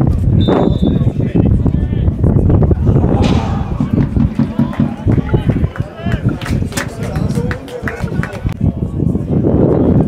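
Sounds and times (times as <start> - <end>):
uneven low rumble: 2.6 - 5.9
football players shouting: 2.8 - 6.2.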